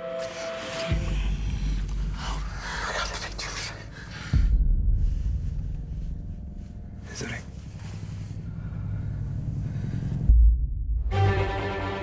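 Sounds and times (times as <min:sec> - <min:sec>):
deep low rumble with boom: 0:01.0 - 0:11.2.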